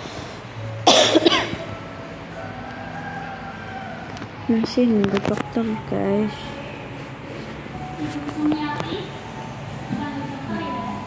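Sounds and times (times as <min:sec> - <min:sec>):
person coughing: 0:00.9 - 0:01.6.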